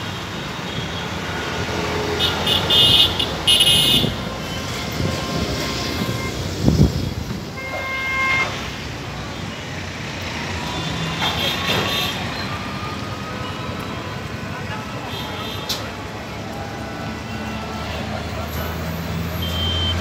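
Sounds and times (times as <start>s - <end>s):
street traffic noise: 0.0s - 20.0s
vehicle horns honking: 2.1s - 6.6s, 7.6s - 8.7s, 19.4s - 20.0s.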